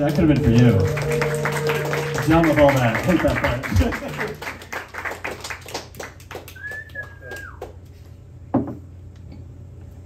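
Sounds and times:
audience clapping: 0.0 - 8.0
steady low hum: 0.0 - 10.0.

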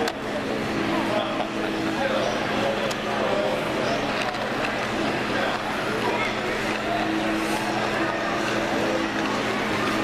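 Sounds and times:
crowd chatter: 0.0 - 10.0
model train running hum: 0.0 - 10.0.

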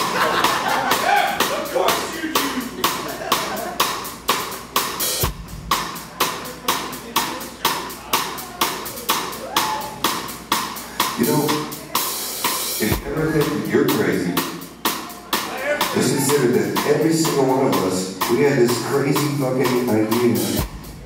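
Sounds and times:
rock drum kit playing: 0.0 - 21.0
voices: 10.8 - 20.6.

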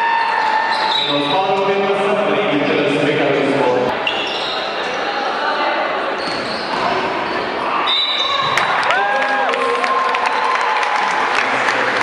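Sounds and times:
players' voices: 1.0 - 4.0.

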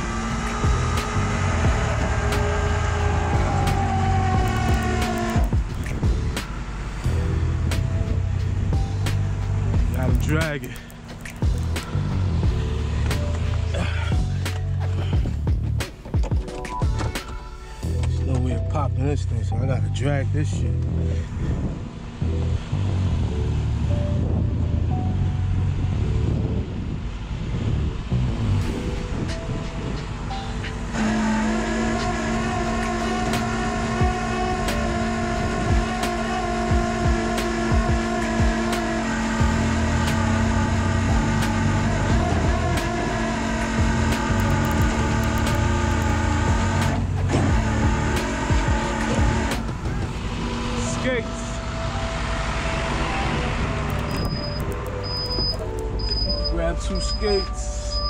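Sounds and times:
winch whining under load: 0.0 - 18.8, 28.6 - 58.0
truck engine rumble: 0.0 - 58.0.

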